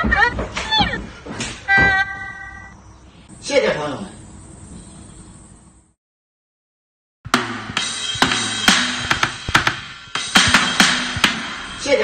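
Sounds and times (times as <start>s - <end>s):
drum and cymbal hits: 7.3s - 12.0s.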